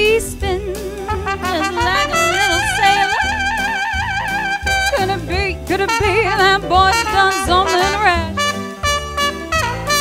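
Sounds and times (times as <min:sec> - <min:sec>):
woman singing swing song: 0:00.0 - 0:08.6
brass-led backing band: 0:00.0 - 0:10.0.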